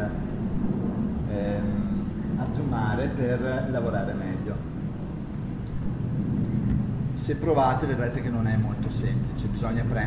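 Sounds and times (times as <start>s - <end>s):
room background rumble: 0.0s - 10.0s.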